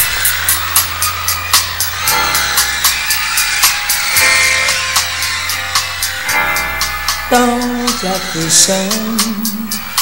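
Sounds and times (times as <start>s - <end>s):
cymbal ticking: 0.0s - 10.0s
live band playing: 0.0s - 10.0s.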